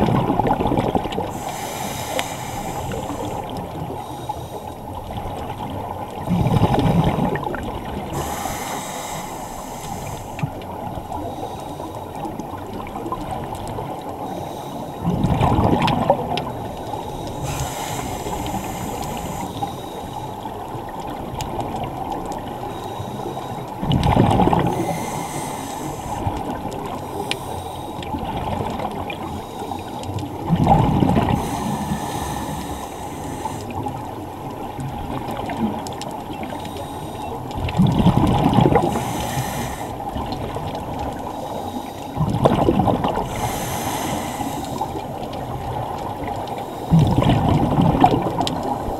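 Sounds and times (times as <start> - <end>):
muffled water noise: 0.0 - 48.9
bubbling diver exhalations: 23.8 - 26.6.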